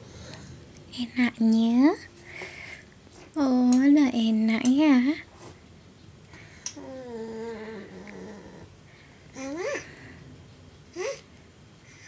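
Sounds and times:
person humming: 0:06.8 - 0:08.7.

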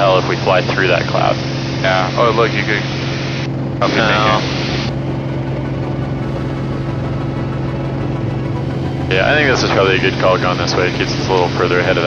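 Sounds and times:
propeller plane engine droning: 0:00.0 - 0:12.0.

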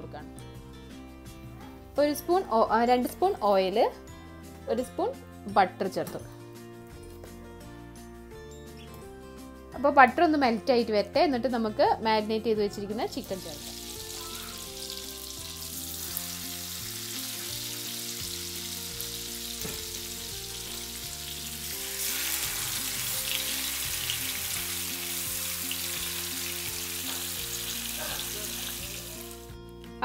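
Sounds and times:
background music: 0:00.0 - 0:30.0
butter and oil sizzling in pan: 0:13.1 - 0:29.5.

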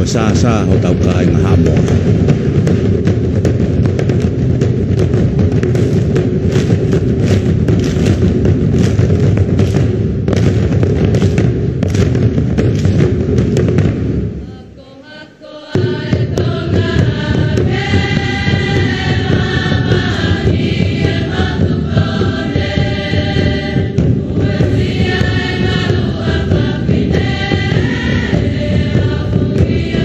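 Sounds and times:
sharp percussive beats: 0:00.0 - 0:14.6, 0:15.7 - 0:30.0
choir singing: 0:14.4 - 0:30.0
girls chanting: 0:14.4 - 0:30.0.

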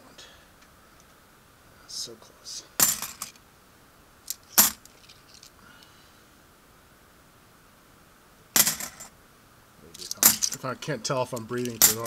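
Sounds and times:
coins clinking: 0:02.8 - 0:03.4, 0:04.3 - 0:05.5, 0:08.6 - 0:09.1, 0:09.9 - 0:10.7, 0:11.4 - 0:12.0.

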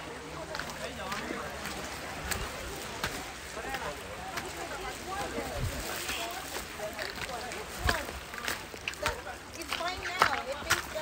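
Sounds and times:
people talking faintly: 0:00.0 - 0:11.0
steady outdoor rush: 0:00.0 - 0:11.0.

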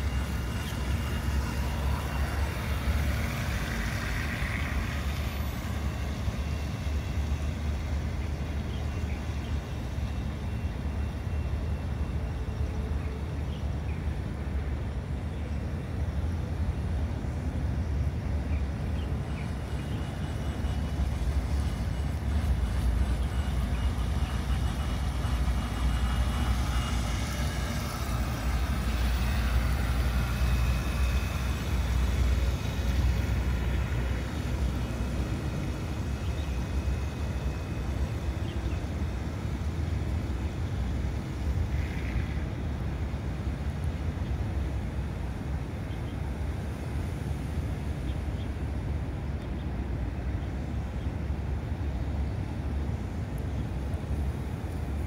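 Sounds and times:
model boat motor whine: 0:00.0 - 0:55.0.

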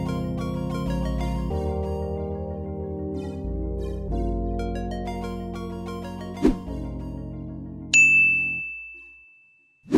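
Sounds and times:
outro music with low chords: 0:00.0 - 0:07.9
high bell-like ding: 0:07.9 - 0:09.9.

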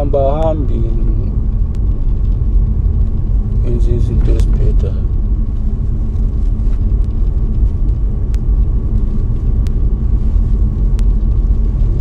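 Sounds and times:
faint constant hum: 0:00.0 - 0:12.0
vehicle rumble: 0:00.0 - 0:12.0.

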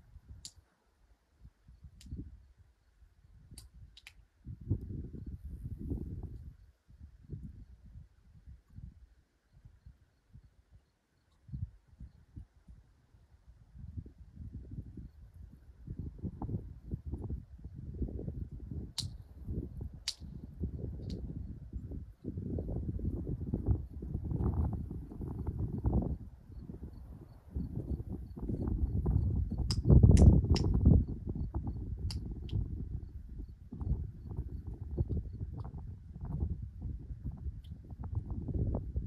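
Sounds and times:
wind buffeting microphone: 0:01.4 - 0:10.7, 0:11.3 - 0:39.0.

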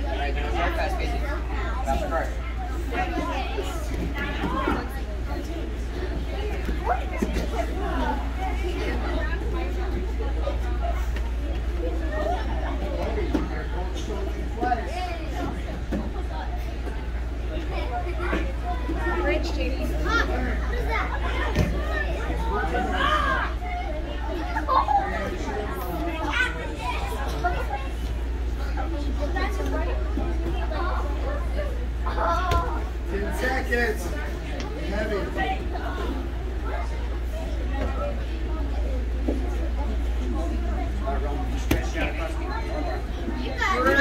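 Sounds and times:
children chattering and calling: 0:00.0 - 0:44.0.

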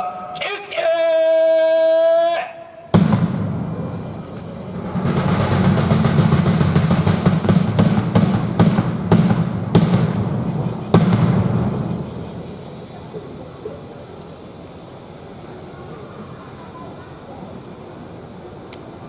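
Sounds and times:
low rumble: 0:03.0 - 0:12.8.

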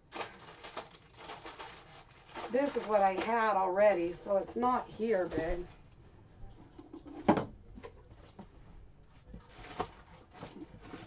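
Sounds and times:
plastic bags crinkling: 0:00.0 - 0:05.8.

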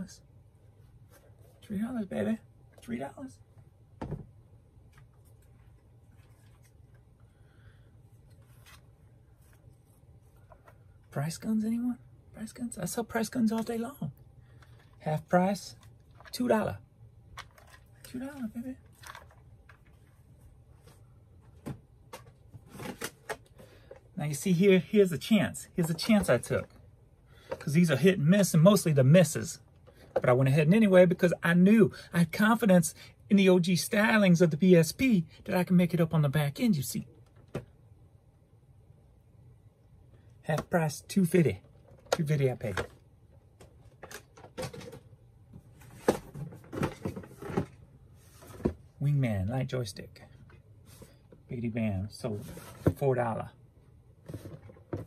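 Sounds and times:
low steady hum: 0:00.0 - 0:55.0
objects set down on a table: 0:04.0 - 0:04.3
boxes knocking and rustling: 0:41.7 - 0:49.0, 0:52.3 - 0:53.1, 0:54.2 - 0:55.0.

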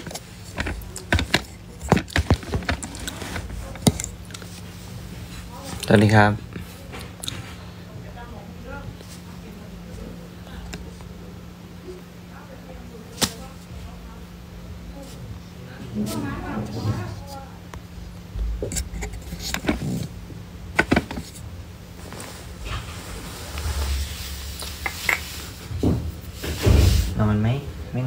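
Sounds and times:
faint voices: 0:00.0 - 0:21.4
low steady hum: 0:00.0 - 0:28.0.

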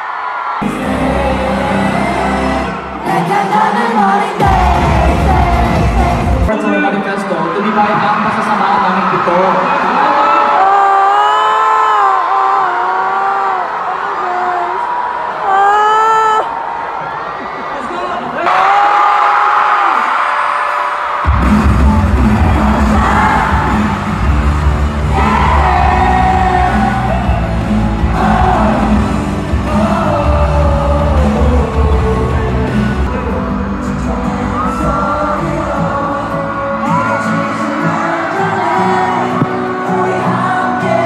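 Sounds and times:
crowd screaming: 0:00.0 - 0:05.4, 0:07.5 - 0:41.0
high voices singing: 0:00.6 - 0:06.5, 0:21.3 - 0:41.0
pop song with heavy bass: 0:00.6 - 0:06.6, 0:21.2 - 0:41.0.

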